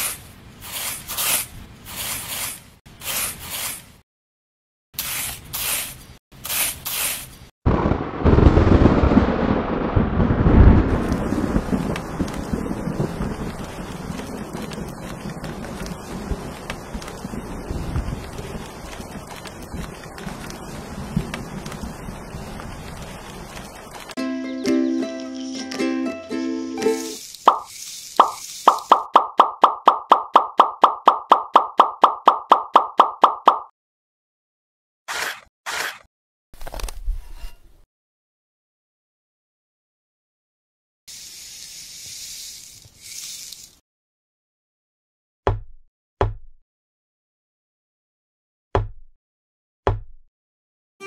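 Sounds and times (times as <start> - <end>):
trowel scraping through sand: 0.0 - 4.0, 5.0 - 7.5, 35.1 - 36.1
long rumble of thunder: 7.7 - 18.8
ukulele music: 24.2 - 27.2
short pitched plopping pops: 28.2 - 33.7.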